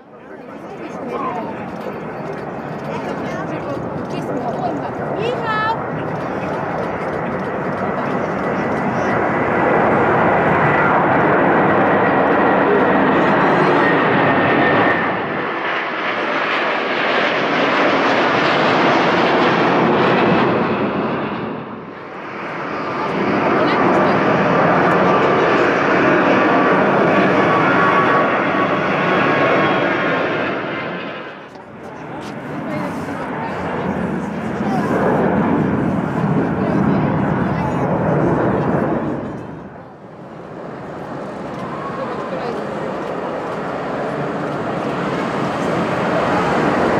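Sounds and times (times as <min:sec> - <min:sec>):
jet engines roaring: 0:00.0 - 0:46.9.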